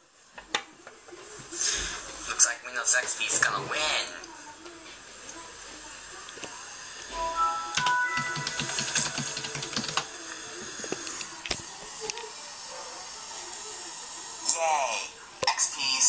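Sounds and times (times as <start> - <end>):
computer startup chime: 7.2 - 10.6.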